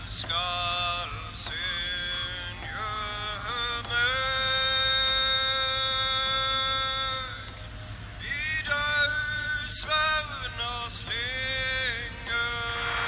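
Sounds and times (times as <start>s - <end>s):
chant-like singing voice: 0.0s - 7.5s, 8.2s - 13.0s.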